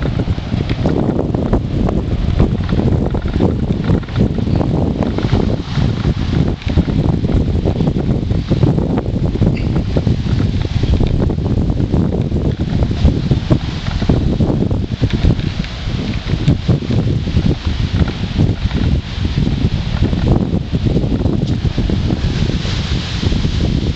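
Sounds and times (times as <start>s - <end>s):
wind buffeting microphone: 0.0s - 23.9s.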